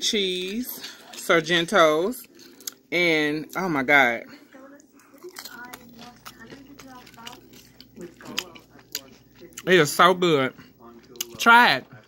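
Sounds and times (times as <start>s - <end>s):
person chewing crunchy food: 0.4s - 3.7s, 4.5s - 11.4s.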